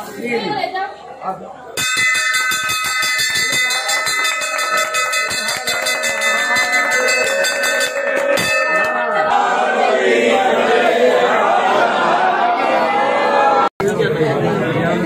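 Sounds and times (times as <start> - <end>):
crowd of voices: 0.0 - 15.0
brass bell ringing rapidly: 1.8 - 9.9.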